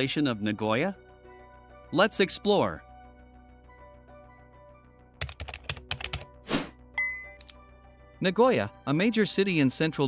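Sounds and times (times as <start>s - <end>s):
quiet background music: 0.0s - 10.0s.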